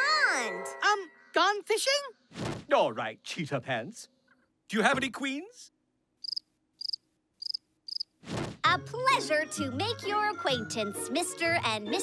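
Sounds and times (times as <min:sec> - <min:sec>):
cricket chirping: 0:06.2 - 0:08.1.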